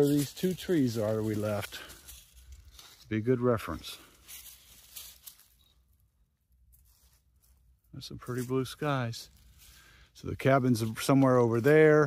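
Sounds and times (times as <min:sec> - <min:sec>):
faint rustling: 0:00.0 - 0:12.0.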